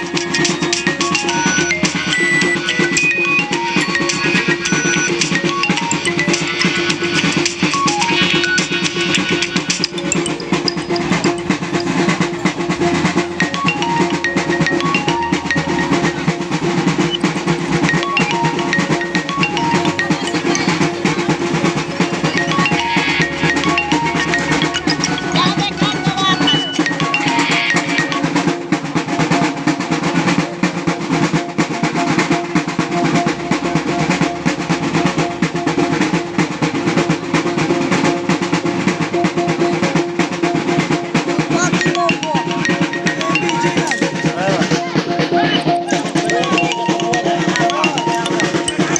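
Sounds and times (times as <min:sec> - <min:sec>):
fast drumming: 0:00.0 - 0:48.9
ringing gongs melody: 0:00.0 - 0:48.9.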